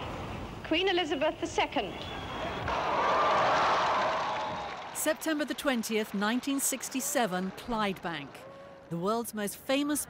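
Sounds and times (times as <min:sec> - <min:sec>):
crowd cheering and applauding: 0:02.2 - 0:09.0.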